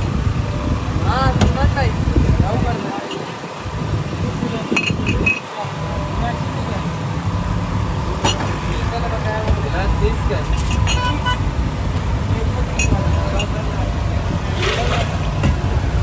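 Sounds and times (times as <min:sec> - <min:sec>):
low rumble of street traffic: 0:00.0 - 0:16.0
glass tumblers clinking: 0:04.8 - 0:05.4, 0:12.7 - 0:13.6.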